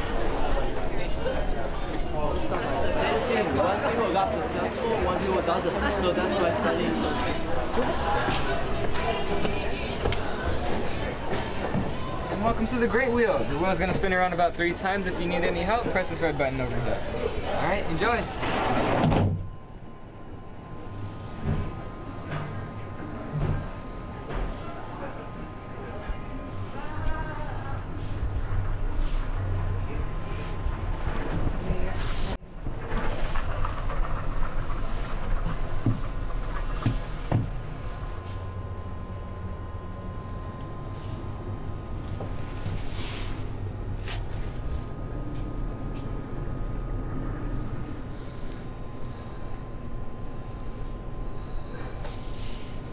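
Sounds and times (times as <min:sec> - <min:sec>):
outside noise: 0:00.0 - 0:52.9
low cabin hum: 0:25.1 - 0:52.9.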